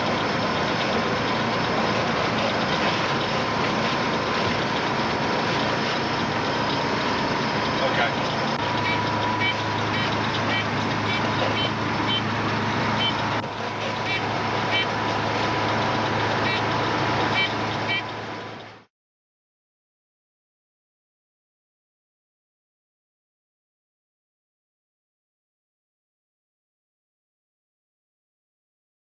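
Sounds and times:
deep drone: 0:00.0 - 0:18.9
truck engine and road noise: 0:00.0 - 0:18.9.

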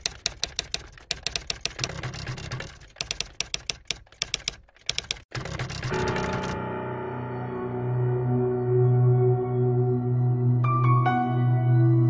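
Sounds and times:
keyboard key clicks: 0:00.0 - 0:06.6.

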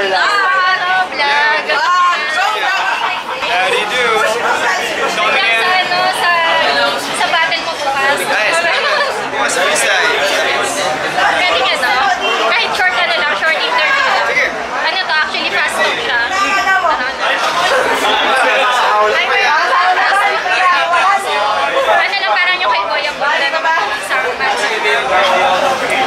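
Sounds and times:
people talking quickly: 0:00.0 - 0:26.0
room chatter: 0:00.0 - 0:26.0.

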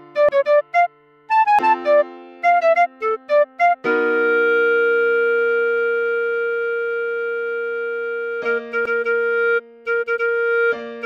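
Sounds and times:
clarinet long note: 0:00.0 - 0:11.0
soft keyboard chord: 0:00.0 - 0:11.0.

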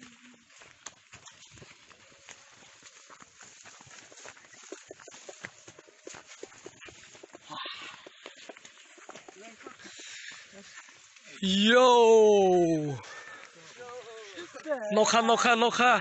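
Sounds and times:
leaves and twigs crackling: 0:00.0 - 0:15.1
footsteps in undergrowth: 0:00.0 - 0:15.8.

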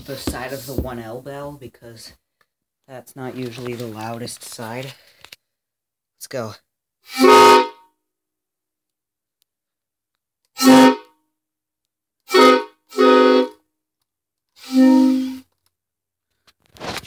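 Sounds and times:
train horn blasts: 0:07.1 - 0:07.9, 0:10.6 - 0:11.2, 0:12.3 - 0:13.6, 0:14.6 - 0:15.4.

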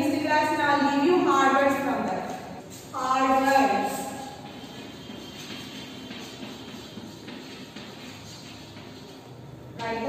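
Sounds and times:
chalk scraping on chalkboard: 0:01.3 - 0:10.0.

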